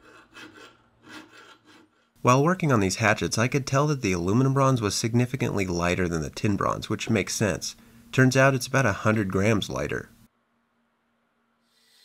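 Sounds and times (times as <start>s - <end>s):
file rasping against metal: 0.0s - 2.0s.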